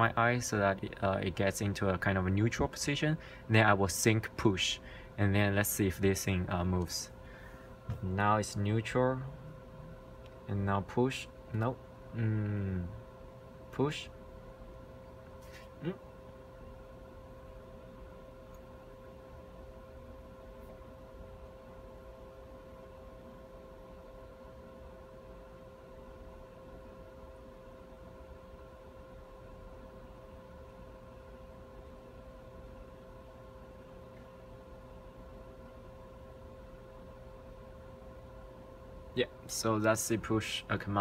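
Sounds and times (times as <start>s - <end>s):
low hum with thin tone: 0.0s - 41.0s.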